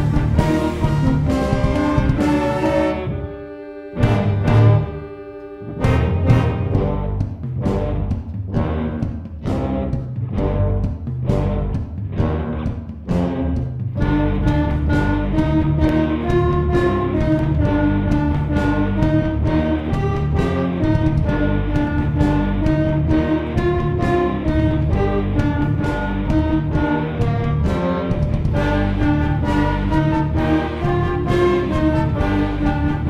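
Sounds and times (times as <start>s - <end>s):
drum kit beating: 0.0s - 33.0s
electric bass: 0.0s - 33.0s
electric guitar: 0.0s - 33.0s
tuba: 0.0s - 33.0s
wind section playing melody notes: 0.0s - 33.0s.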